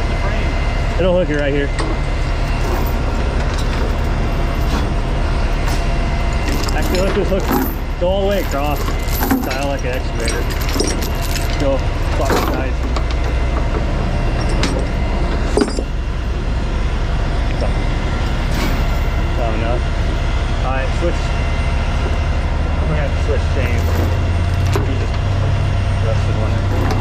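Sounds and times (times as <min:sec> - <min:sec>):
low engine drone: 0:00.0 - 0:27.0
chains rattling on wooden deck: 0:06.4 - 0:16.0, 0:23.6 - 0:25.0, 0:26.6 - 0:27.0.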